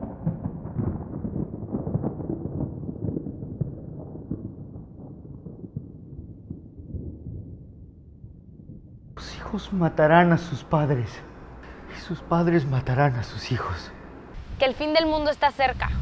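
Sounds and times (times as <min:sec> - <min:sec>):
deep thunder-like rumble: 0:00.0 - 0:16.0.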